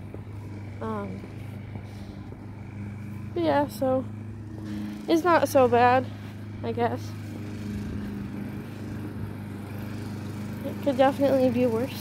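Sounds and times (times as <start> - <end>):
lawn mower engine running: 0.0 - 12.0.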